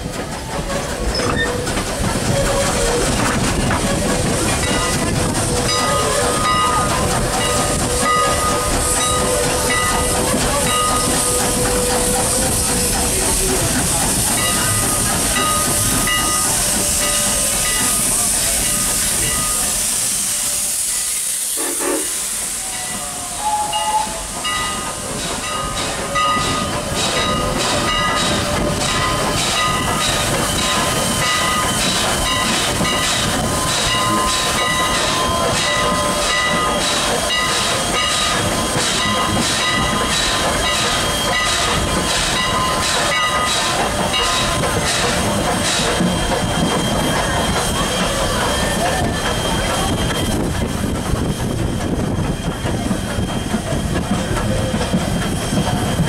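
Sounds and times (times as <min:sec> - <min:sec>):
steam hissing: 0:00.0 - 0:56.0
steam locomotive chuffing: 0:00.0 - 0:56.0.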